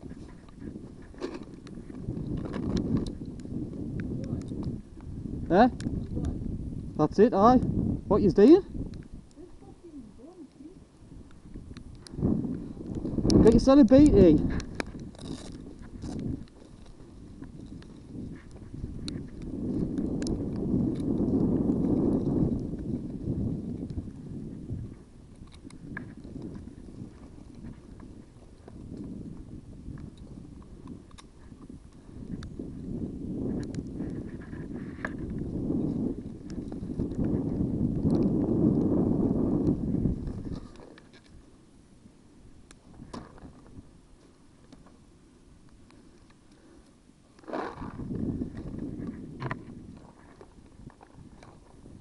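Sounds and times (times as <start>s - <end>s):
microphone handling rumble: 0.0s - 41.5s, 42.8s - 45.1s, 47.4s - 52.0s.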